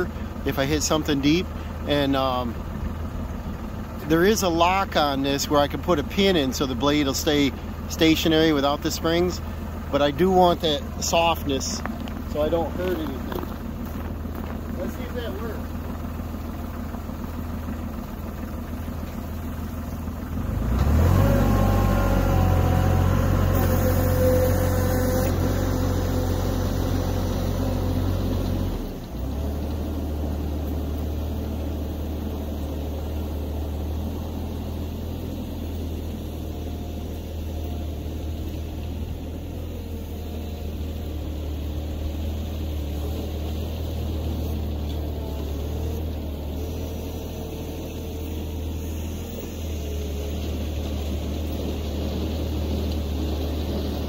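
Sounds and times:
tractor engine: 0.0s - 54.0s.

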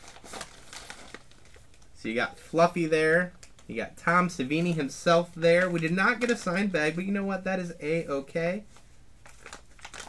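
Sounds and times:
coffee bag crinkling: 0.0s - 1.9s, 4.4s - 6.9s, 9.2s - 10.0s.

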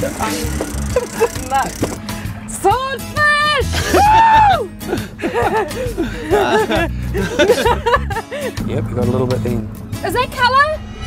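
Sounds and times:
background music: 0.0s - 11.0s
people talking indistinctly: 0.0s - 11.0s
low rumble: 5.1s - 11.0s.

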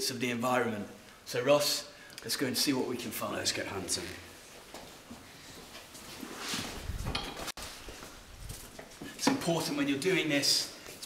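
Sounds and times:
objects rustling and knocking: 4.6s - 9.7s.

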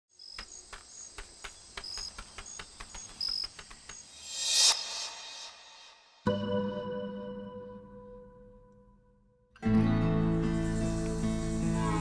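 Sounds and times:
sharp clicks speeding up: 0.4s - 5.0s.

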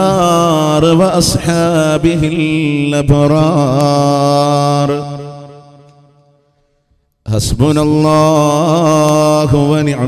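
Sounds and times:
man chanting through microphone: 0.0s - 6.4s, 7.2s - 10.0s.

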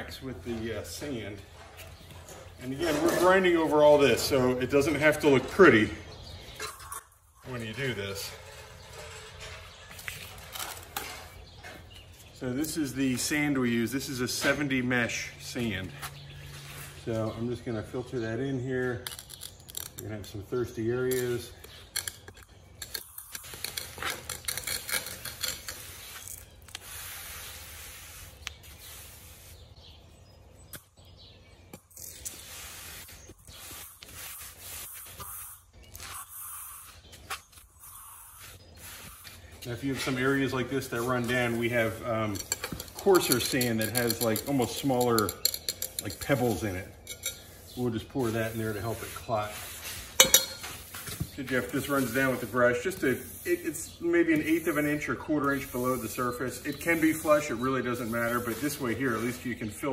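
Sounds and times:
rustling and scuffing on concrete: 0.0s - 59.9s
small scrapes and clicks: 19.0s - 20.4s, 21.1s - 29.6s, 41.2s - 47.8s
sand pouring hiss: 25.8s - 29.7s, 32.3s - 35.6s, 37.9s - 39.4s, 50.8s - 59.7s.

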